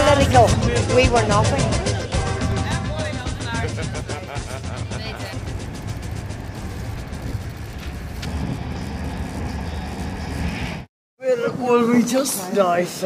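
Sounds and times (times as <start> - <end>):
low rumble: 0.3 - 10.9.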